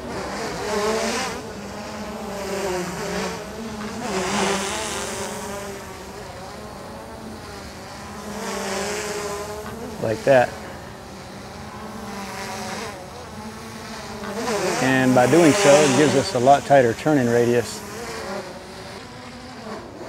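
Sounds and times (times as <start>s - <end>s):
drone propellers buzzing: 0.0s - 20.0s.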